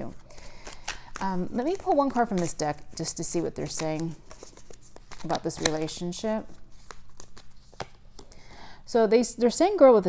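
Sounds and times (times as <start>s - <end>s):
cards rustling: 0.1s - 8.6s
person speaking: 1.2s - 4.2s, 5.2s - 6.6s.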